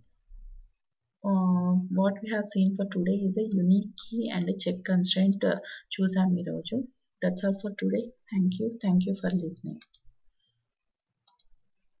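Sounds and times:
computer mouse clicks: 9.7 - 10.1, 11.2 - 11.6.

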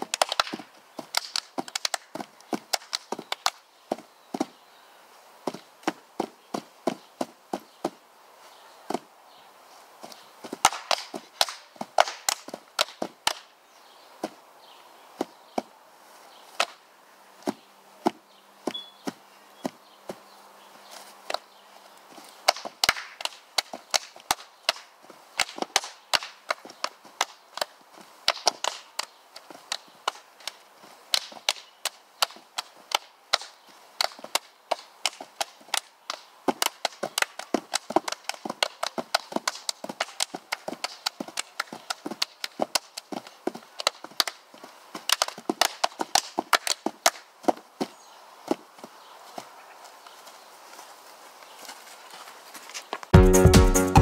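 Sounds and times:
hand claps and body slaps: 0.0 - 4.5, 10.0 - 13.5, 16.6 - 16.8, 22.4 - 44.4, 45.0 - 47.3.

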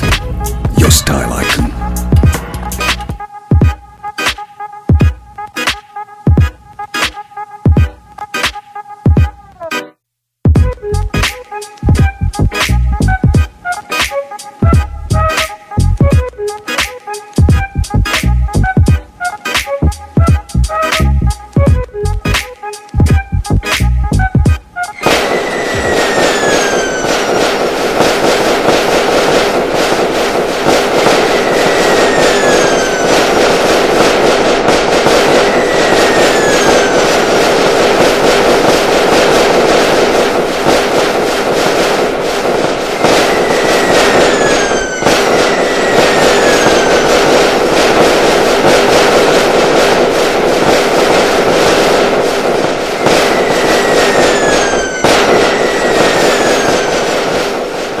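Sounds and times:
fireworks crackling bursts: 0.0 - 3.0, 24.6 - 58.0
falling firework whistles: 24.8 - 58.0.

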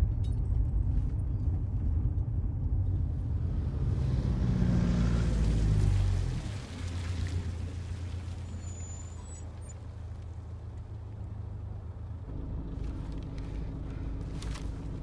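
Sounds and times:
van driving past: 3.2 - 10.5.

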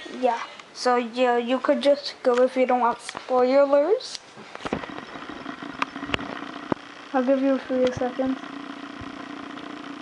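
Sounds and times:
sharp clicks: 4.1 - 10.0
low motor hum: 4.5 - 10.0.

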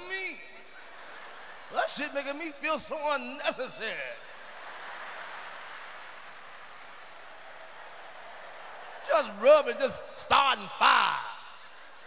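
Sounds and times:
comedian speaking: 0.0 - 0.6, 1.7 - 4.2, 9.1 - 11.8
audience applause and laughter: 0.7 - 2.2, 4.2 - 9.1.

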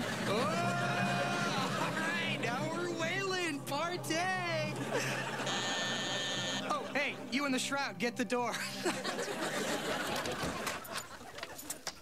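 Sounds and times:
studio audience laughter: 0.0 - 2.4, 4.7 - 7.3, 8.6 - 11.6
doorbell buzzer: 5.4 - 6.7.

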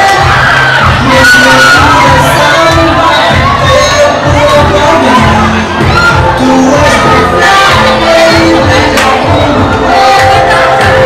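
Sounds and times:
crowd shouting and cheering: 0.0 - 11.0
rap music with bass beat: 0.0 - 11.0.

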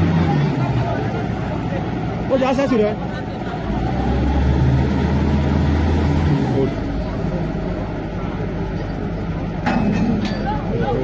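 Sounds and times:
drilling rig engine running: 0.0 - 11.0.

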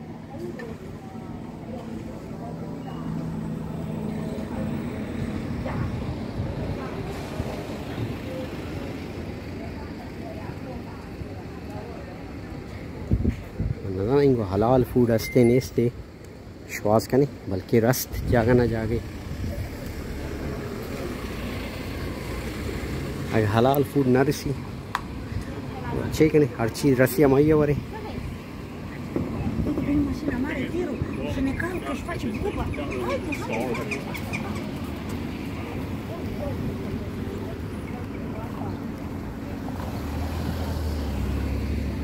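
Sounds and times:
street traffic rumble: 0.0 - 42.0
vehicle engine hum: 0.0 - 42.0
car passing by: 39.4 - 42.0.

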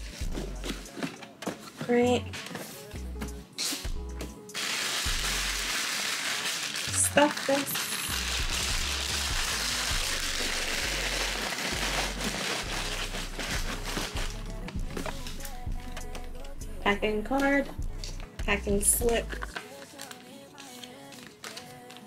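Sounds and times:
background music with bass: 0.0 - 1.0, 1.9 - 4.5, 5.1 - 5.7, 8.1 - 19.5
paper rustling and crinkling: 0.6 - 2.9, 4.6 - 15.6, 19.3 - 22.0.

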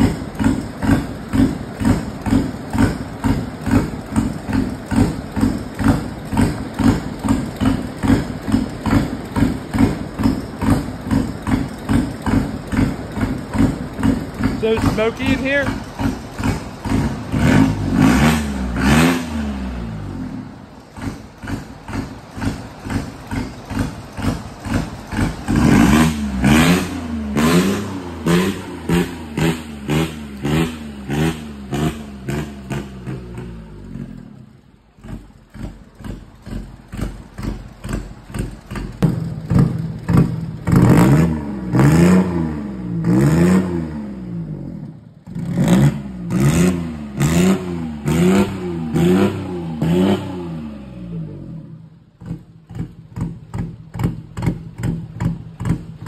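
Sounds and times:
diesel engine revving: 0.0 - 56.0.

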